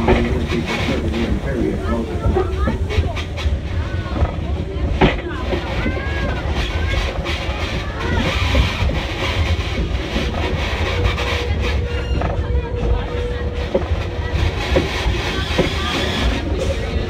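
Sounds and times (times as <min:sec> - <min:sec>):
people's voices: 0:00.0 - 0:17.0
train rumble: 0:00.0 - 0:17.0.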